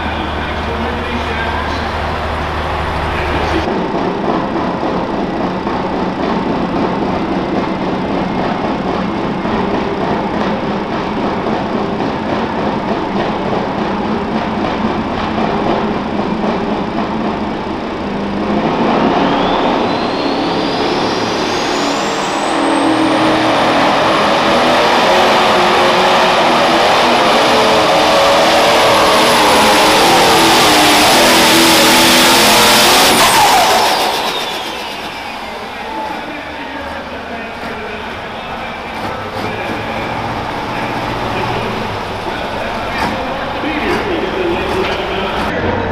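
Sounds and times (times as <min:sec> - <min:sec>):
diesel engine revving: 0:00.0 - 0:45.9
turbo whine whistle: 0:19.0 - 0:24.0, 0:29.0 - 0:36.5.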